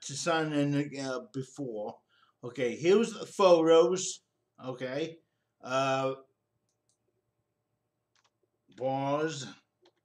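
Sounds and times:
computer mouse clicks: 8.1s - 8.8s.

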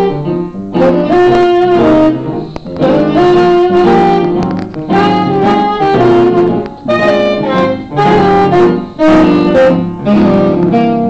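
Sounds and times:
jazz saxophone melody: 0.0s - 11.0s.

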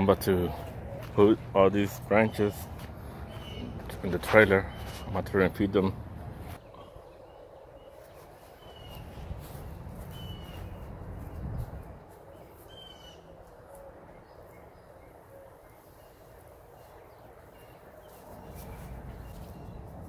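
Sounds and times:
birds chirping: 0.0s - 20.0s.

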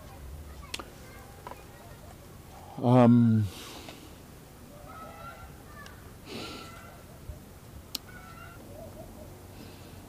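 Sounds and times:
high animal calls: 4.7s - 7.1s, 8.0s - 9.4s.

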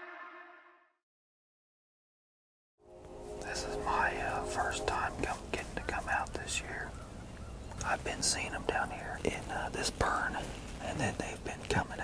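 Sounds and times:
man whispering: 3.4s - 7.0s, 7.8s - 12.0s.

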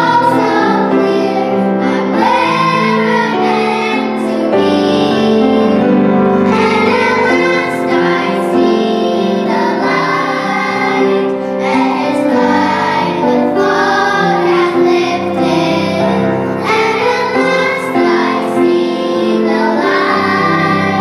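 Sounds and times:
girls singing pop song: 0.0s - 21.0s.

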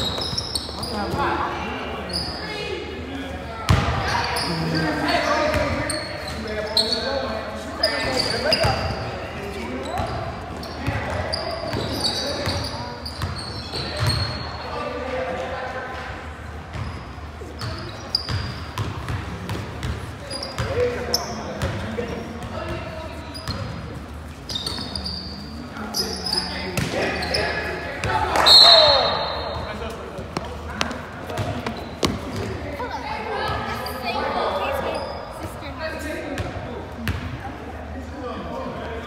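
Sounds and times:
sneakers squeaking: 0.0s - 2.9s, 3.5s - 15.0s, 16.6s - 37.4s.

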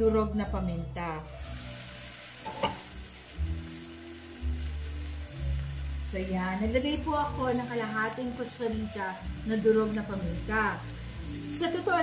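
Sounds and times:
onions and tomatoes sizzling in a pan: 1.2s - 12.0s.

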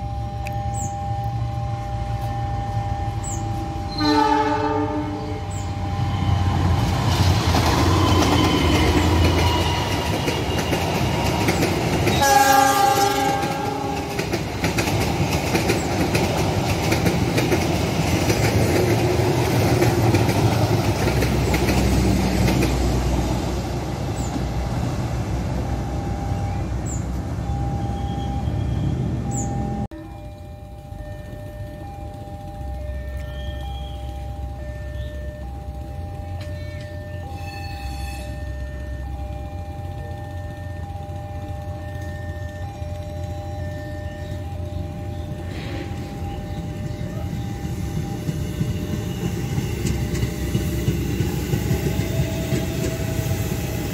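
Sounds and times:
train wheels rumbling on rail: 0.0s - 53.9s
locomotive horn: 1.2s - 6.6s, 12.1s - 14.3s, 36.6s - 38.9s.

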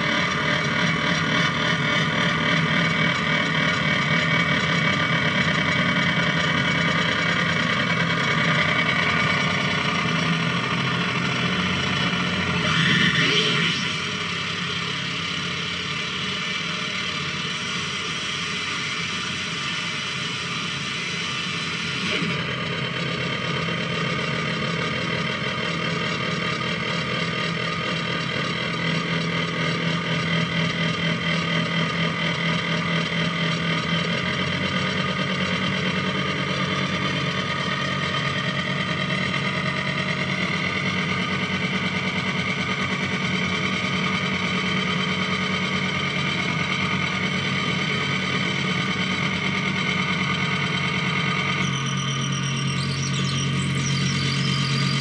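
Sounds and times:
electronic drone: 0.0s - 55.0s
high warbling squeals: 12.4s - 14.8s, 49.8s - 55.0s.

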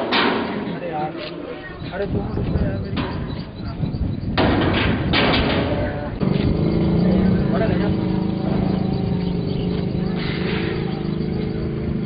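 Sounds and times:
low engine-like hum: 5.8s - 12.0s.

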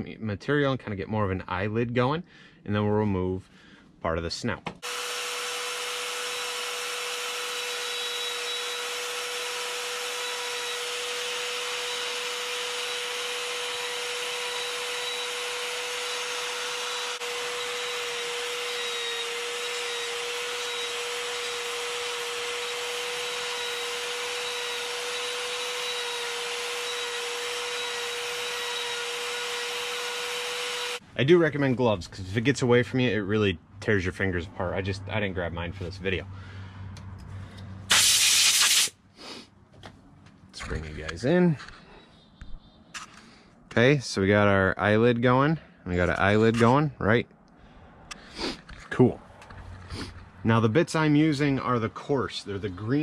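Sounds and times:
rotary tool grinding wood: 4.8s - 31.0s, 49.5s - 50.3s.

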